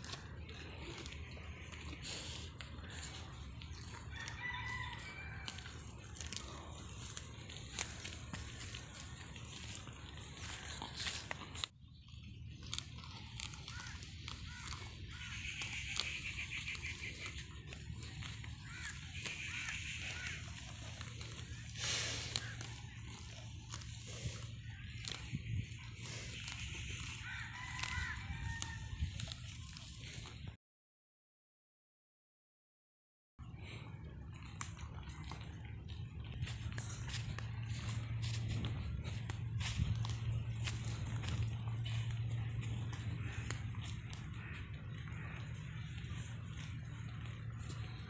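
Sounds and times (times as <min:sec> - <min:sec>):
steady low rumble: 0:00.0 - 0:30.5, 0:33.4 - 0:48.0
rooster crowing: 0:03.9 - 0:06.0, 0:27.2 - 0:29.0
bird calling: 0:12.6 - 0:28.2, 0:38.9 - 0:48.0.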